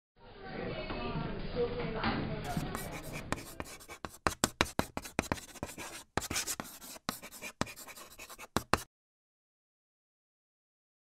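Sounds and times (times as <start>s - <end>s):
chalk scratching on chalkboard: 2.4s - 8.9s.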